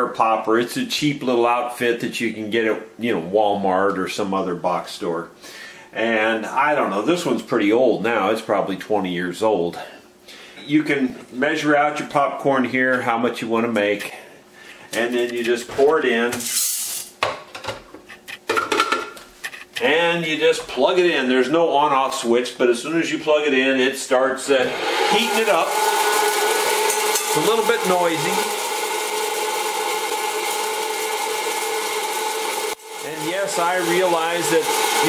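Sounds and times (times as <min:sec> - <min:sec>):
popcorn popper fan whirring: 0:24.4 - 0:35.0.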